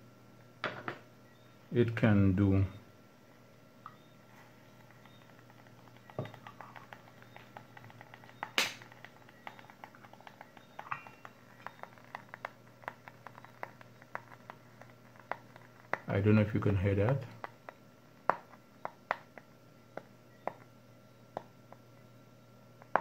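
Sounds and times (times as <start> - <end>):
soldering iron crackling ticks: 4.7 - 20.7.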